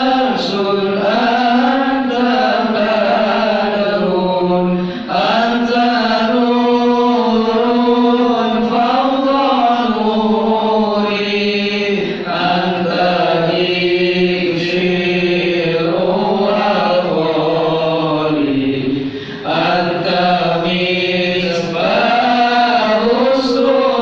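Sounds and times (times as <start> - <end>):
man chanting: 0.0 - 24.0.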